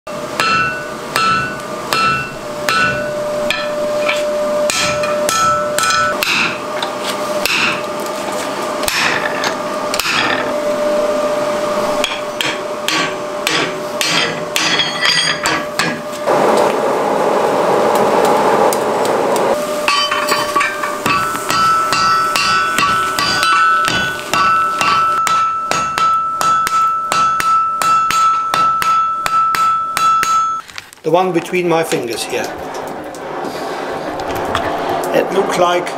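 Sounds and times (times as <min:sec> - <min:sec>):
hammer striking steel on anvil: 0:00.3 - 0:06.6, 0:07.4 - 0:07.8, 0:08.8 - 0:10.6, 0:12.0 - 0:16.0, 0:19.8 - 0:30.6
dense rushing noise: 0:16.2 - 0:19.7, 0:31.6 - 0:35.9.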